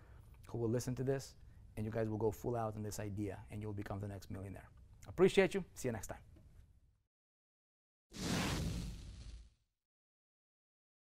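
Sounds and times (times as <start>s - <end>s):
rushing whoosh: 8.2s - 9.5s.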